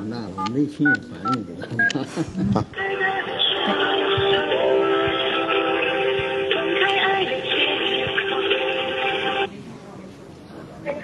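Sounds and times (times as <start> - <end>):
music with singing: 2.7 - 9.5.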